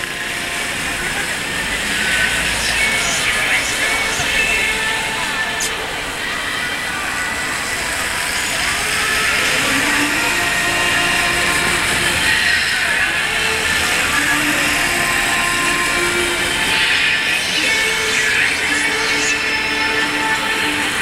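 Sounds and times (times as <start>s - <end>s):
crowd voices: 0.0s - 21.0s
traffic: 0.0s - 21.0s.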